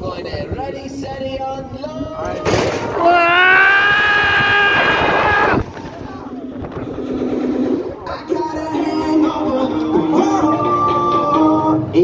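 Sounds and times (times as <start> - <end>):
fairground noise: 0.0 - 12.0
person screaming: 3.0 - 5.7.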